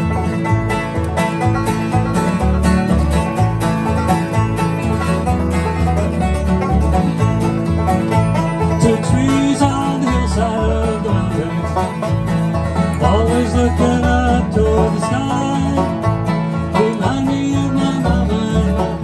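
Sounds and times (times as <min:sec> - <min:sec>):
banjo picking: 0:00.0 - 0:19.0
strummed acoustic guitars: 0:00.0 - 0:19.0
upright bass notes: 0:00.0 - 0:19.0.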